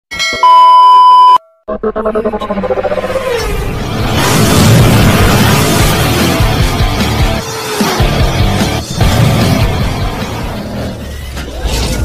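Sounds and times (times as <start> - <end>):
test-tone beep: 0.3 - 2.5
pulsing music: 1.7 - 11.1.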